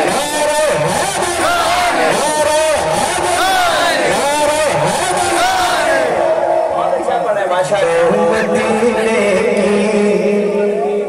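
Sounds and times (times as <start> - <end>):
man chanting over loudspeaker: 0.0 - 11.0.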